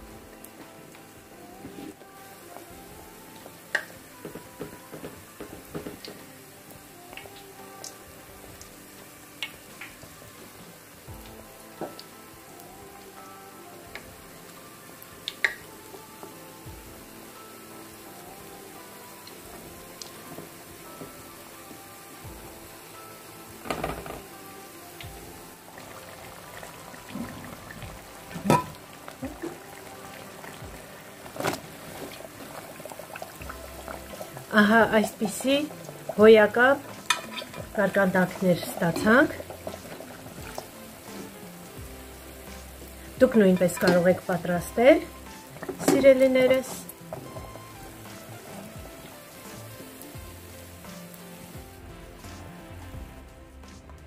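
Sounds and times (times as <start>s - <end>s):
deep-frying sizzle with pops: 0.0s - 54.0s
soft background music: 0.0s - 54.0s.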